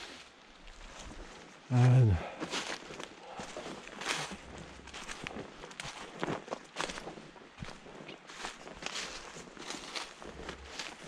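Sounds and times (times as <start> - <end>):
footsteps crunching dry leaves: 0.0 - 11.0.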